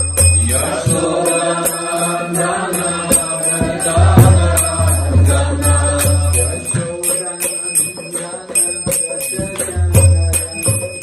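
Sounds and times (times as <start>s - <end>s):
devotional chanting: 0.0s - 11.0s
small hand cymbals: 0.0s - 11.0s.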